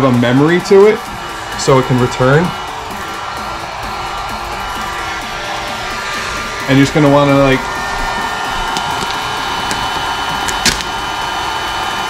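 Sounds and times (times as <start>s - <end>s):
vinyl film crackling: 8.7s - 11.0s.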